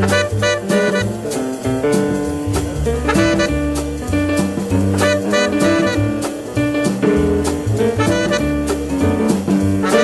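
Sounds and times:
double bass line: 0.0 - 10.0
jazz quintet playing: 0.0 - 10.0.

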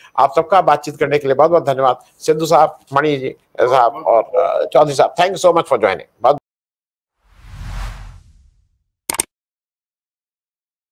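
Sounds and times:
whoosh sound effect: 7.2 - 8.8.

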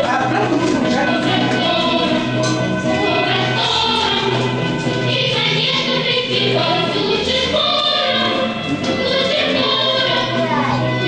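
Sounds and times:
choir singing: 0.2 - 11.0.

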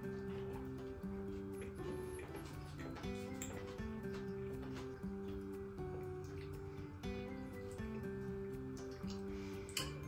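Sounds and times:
soft background melody: 0.0 - 10.0.

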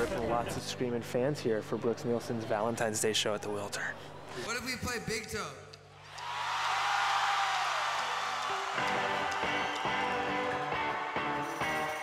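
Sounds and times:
live rock band music: 8.8 - 12.0.

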